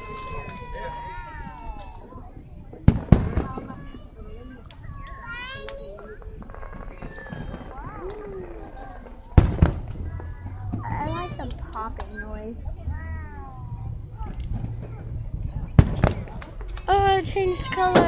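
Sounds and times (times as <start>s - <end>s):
fireworks bursting: 0.0s - 12.3s, 15.6s - 18.0s.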